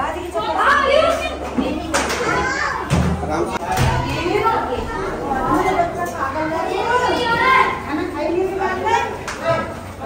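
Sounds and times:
adults and children talking: 0:00.0 - 0:10.0.

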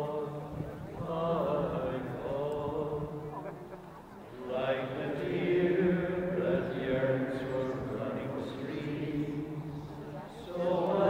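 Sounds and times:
voices chanting a hymn: 0:00.0 - 0:11.0.

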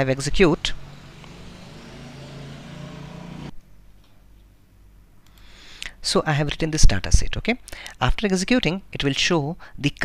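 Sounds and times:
low mechanical hum: 0:00.0 - 0:09.0.

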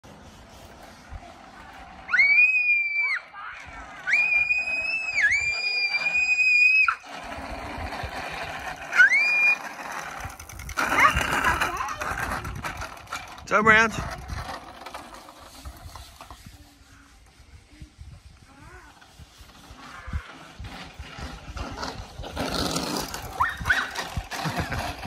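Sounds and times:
child screaming: 0:02.1 - 0:07.0.

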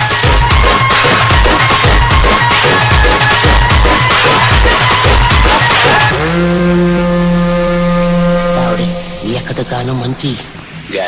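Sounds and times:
low horn-like tone: 0:05.9 - 0:10.2.

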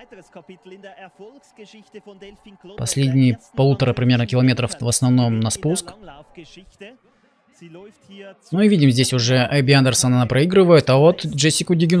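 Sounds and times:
commentary voice: 0:00.0 - 0:12.0.

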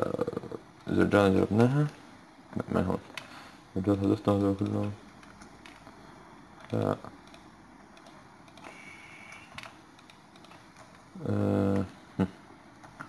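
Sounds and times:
keyboard and mouse clicks: 0:04.6 - 0:06.0, 0:06.6 - 0:11.1, 0:12.8 - 0:13.0.

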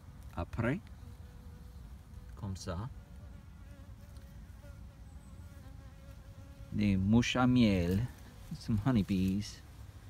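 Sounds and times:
honeybees buzzing faintly: 0:00.0 - 0:10.0.

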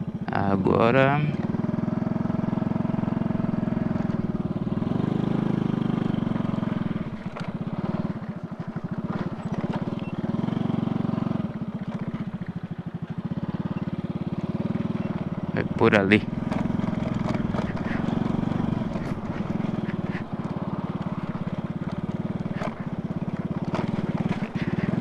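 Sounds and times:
motorcycle engine revving: 0:00.0 - 0:25.0.

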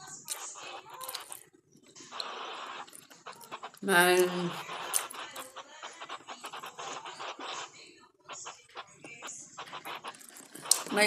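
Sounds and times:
person chewing food: 0:00.2 - 0:01.6, 0:02.2 - 0:05.5, 0:09.8 - 0:11.0
person speaking: 0:03.8 - 0:05.2, 0:10.6 - 0:11.0.

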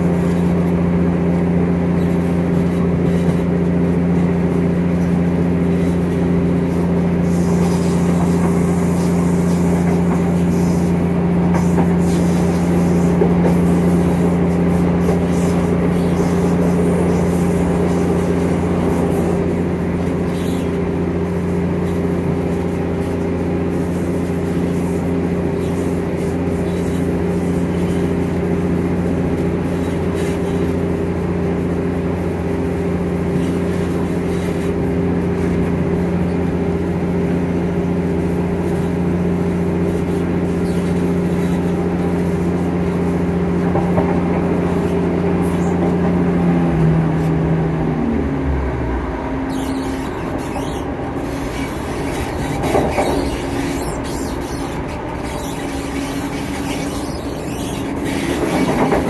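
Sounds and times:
diesel engine drone: 0:00.0 - 0:59.0
train wheels rumbling on track: 0:00.0 - 0:59.0.

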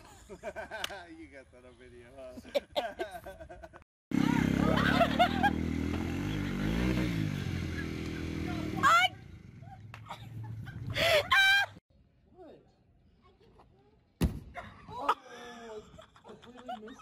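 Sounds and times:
small motorbike engine: 0:04.1 - 0:11.0
excited whoops: 0:11.0 - 0:11.8.

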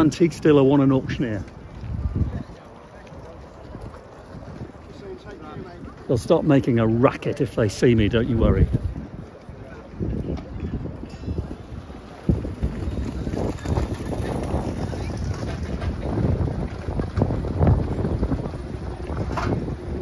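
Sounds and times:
faint voices: 0:00.0 - 0:20.0
wind buffeting microphone: 0:00.0 - 0:20.0.

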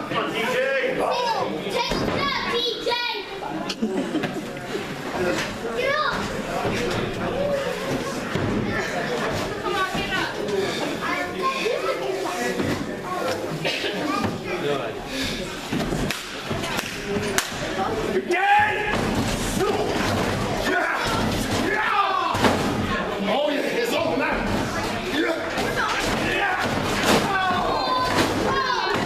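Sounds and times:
crowd voices in a hall: 0:00.0 - 0:29.0
children's high voices: 0:01.0 - 0:03.4, 0:05.7 - 0:06.4, 0:24.7 - 0:29.0
sharp slap-like crack: 0:16.0 - 0:17.6
audience shouting: 0:19.6 - 0:22.6, 0:25.2 - 0:29.0.

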